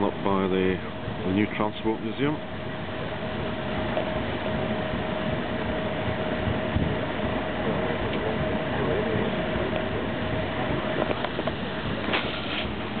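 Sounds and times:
paddles churning and engine noise: 0:00.0 - 0:13.0
thin steady hum: 0:00.0 - 0:13.0.

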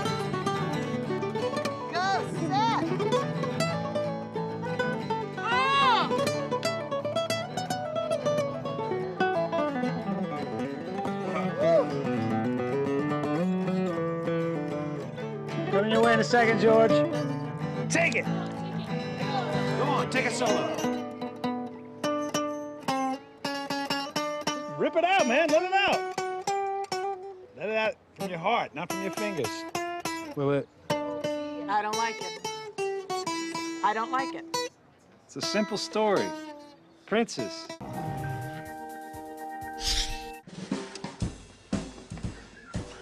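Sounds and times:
acoustic guitar strumming: 0:00.0 - 0:41.8.

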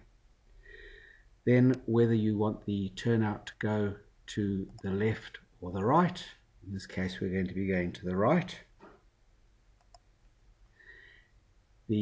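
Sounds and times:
computer mouse clicks: 0:09.8 - 0:10.1.

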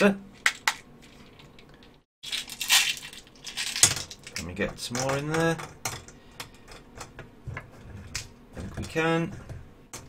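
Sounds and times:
metal sinkers clicking and rattling: 0:01.4 - 0:10.0.

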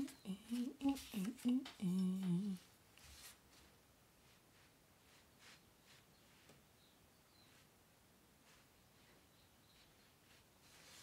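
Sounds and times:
person humming short note: 0:00.0 - 0:02.6.

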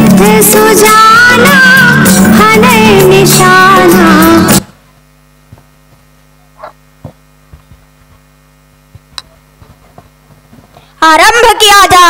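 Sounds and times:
singing with music: 0:00.0 - 0:04.7
electrical mains hum: 0:00.0 - 0:12.0.

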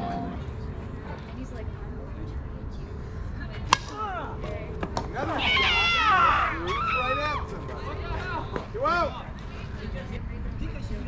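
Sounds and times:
bat cracking a softball: 0:03.7 - 0:04.0
voices shouting: 0:05.2 - 0:07.7.

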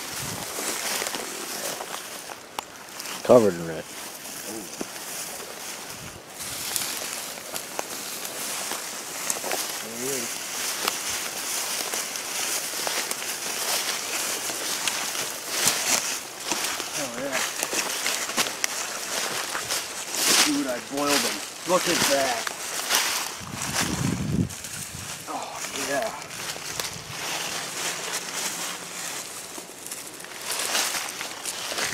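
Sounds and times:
footsteps through dry brush: 0:00.0 - 0:31.9
stems and leaves crackling: 0:00.0 - 0:31.9.

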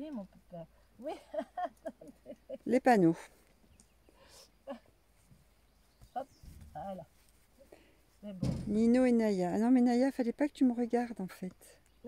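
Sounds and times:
faint rustling: 0:03.1 - 0:09.4.

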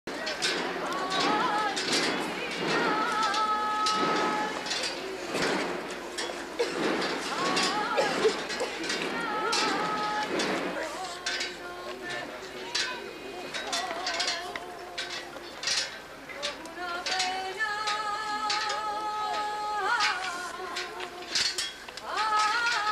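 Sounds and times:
woman singing unaccompanied lament: 0:00.1 - 0:04.7, 0:07.3 - 0:12.5, 0:16.4 - 0:21.4, 0:22.0 - 0:22.9
crowd murmur: 0:00.1 - 0:22.9
scattered clicks: 0:00.1 - 0:22.9.

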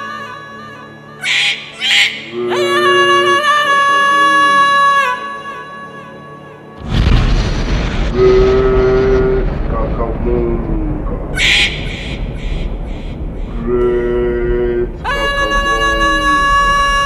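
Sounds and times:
boom with low rumble: 0:06.8 - 0:17.0
bright crash with echoes: 0:06.8 - 0:17.0.

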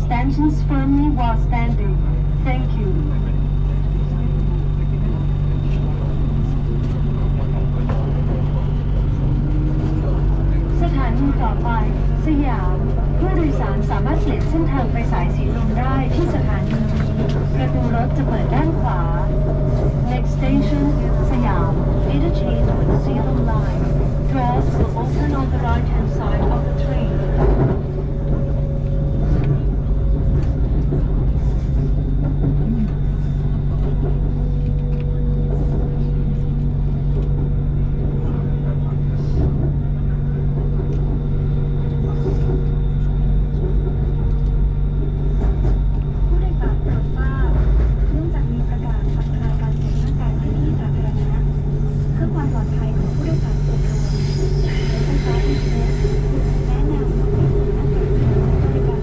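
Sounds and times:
train rumble on rails: 0:00.0 - 0:59.0.

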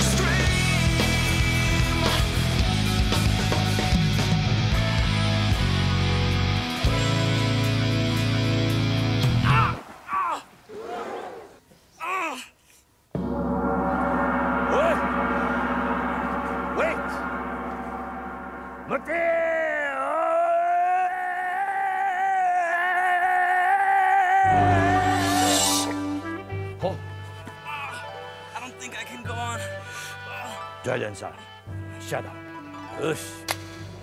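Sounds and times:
rock band playing: 0:00.0 - 0:09.5, 0:13.2 - 0:19.4, 0:24.5 - 0:27.1
gong ringing: 0:13.2 - 0:20.2, 0:24.5 - 0:26.8
gliding vocal sounds: 0:24.4 - 0:26.4
long sung vocal note: 0:24.4 - 0:26.7.

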